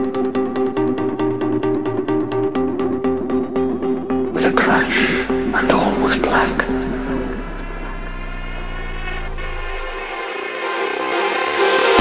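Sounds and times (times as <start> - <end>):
plucked guitar notes: 0.0 - 10.2
deep bass drone: 0.0 - 10.8
held synth chord: 0.0 - 12.0.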